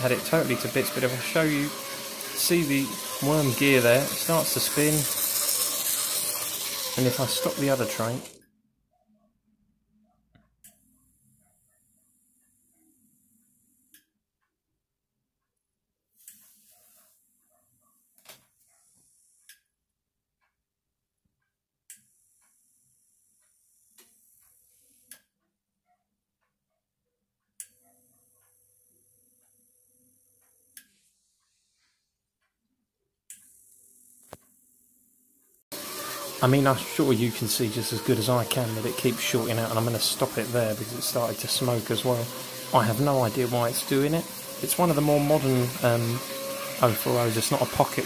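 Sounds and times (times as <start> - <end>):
model train whirring on track: 0.0 - 8.4, 35.7 - 48.0
small electric motor whining: 0.0 - 8.4, 35.7 - 48.0.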